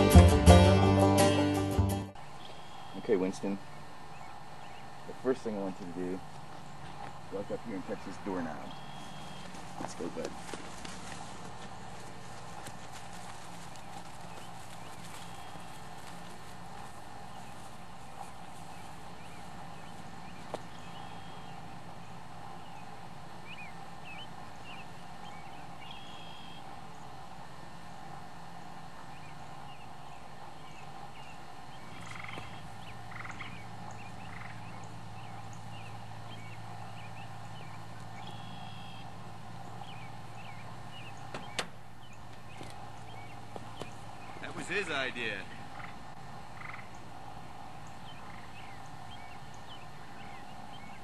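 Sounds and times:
steady hum: 0.0 - 51.0
high chirping animal calls: 2.4 - 10.1, 17.2 - 26.7, 29.1 - 47.2, 47.8 - 51.0.

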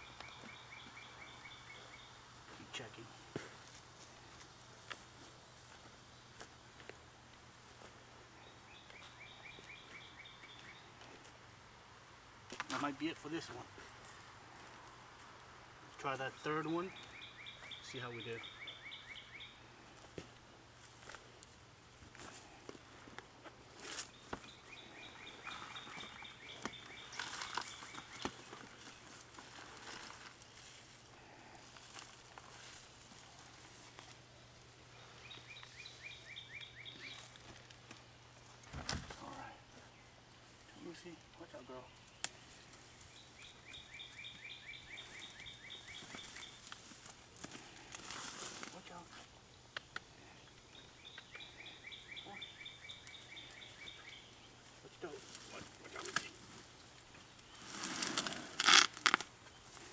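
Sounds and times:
songbird trilling: 0.0 - 2.2, 16.3 - 19.6, 24.1 - 28.4, 35.0 - 37.3, 43.1 - 46.6, 50.7 - 54.5
rustling of plants and soil: 0.0 - 59.9.

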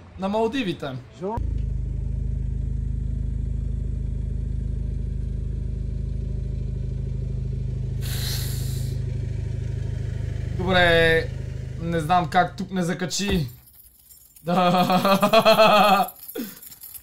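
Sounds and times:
car engine running: 1.4 - 13.6.

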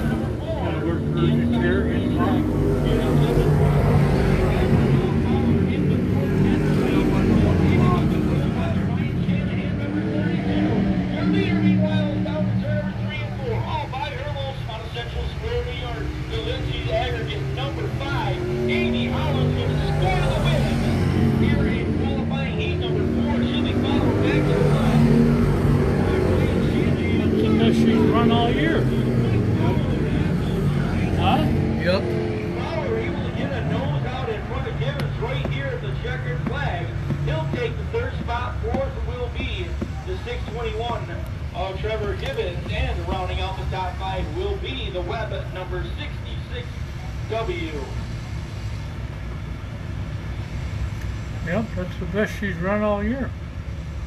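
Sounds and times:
spectators talking: 0.0 - 48.0
race car engines humming: 0.0 - 54.0.

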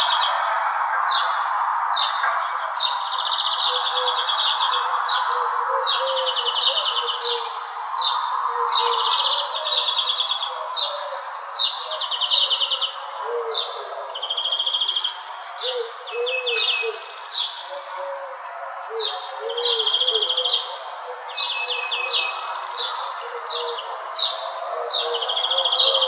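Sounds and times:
songbirds trilling: 2.0 - 26.0.

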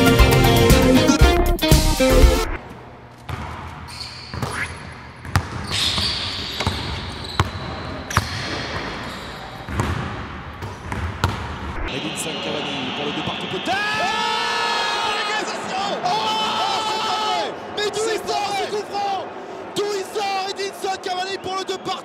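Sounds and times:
basketball bouncing on hardwood floor: 5.2 - 5.8, 6.6 - 8.4, 9.7 - 11.5.

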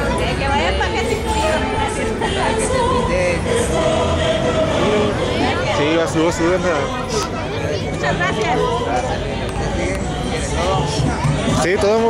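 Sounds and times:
crowd hum: 0.0 - 12.0
music with singing voices: 0.0 - 12.0.

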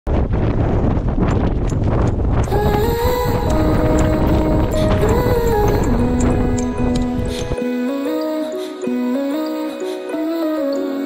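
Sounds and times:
wind buffeting microphone: 0.1 - 7.6
electronic pop music: 2.5 - 11.0.

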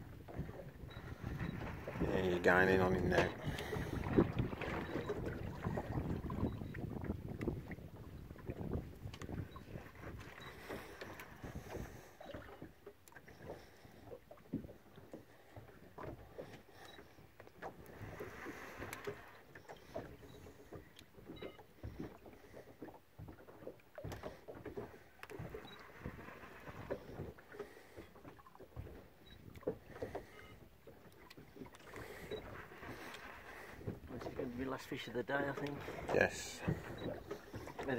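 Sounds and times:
water lapping against hull: 0.0 - 37.9
wind on microphone: 2.9 - 10.4.

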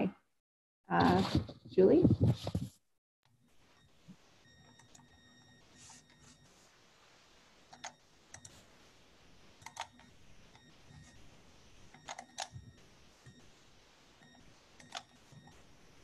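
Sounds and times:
computer mouse clicks: 7.7 - 8.6, 9.6 - 11.2, 11.9 - 12.6, 14.2 - 15.5.

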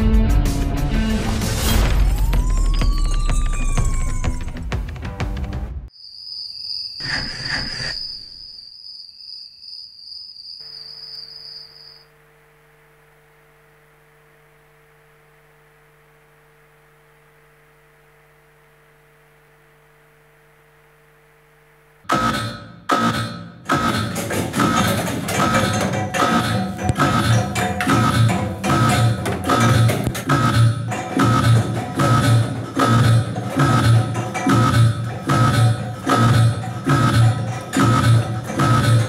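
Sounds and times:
music with drums and percussion: 22.2 - 39.0.

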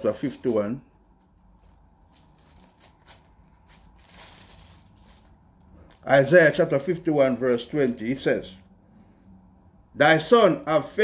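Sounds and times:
thin pages rustling: 0.0 - 6.0.

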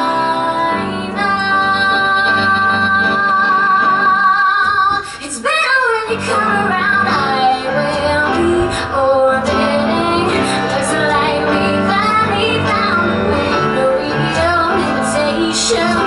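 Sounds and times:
woman singing pop ballad: 0.0 - 16.0.

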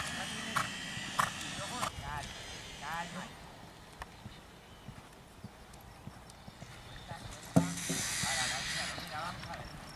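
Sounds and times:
faint hoofbeats on sand: 4.2 - 9.9.

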